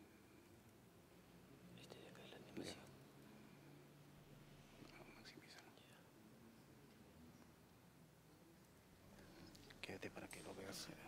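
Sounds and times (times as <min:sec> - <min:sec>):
faint whispering: 0:01.6 - 0:03.9, 0:04.6 - 0:06.9, 0:09.0 - 0:11.0.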